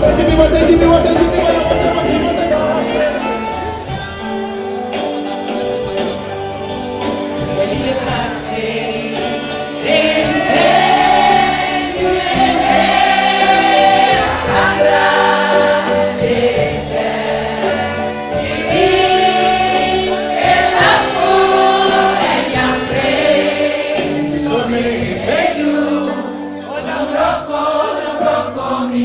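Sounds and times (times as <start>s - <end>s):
crowd singing along: 0.0s - 4.0s, 7.0s - 29.0s
live band music: 0.0s - 29.0s.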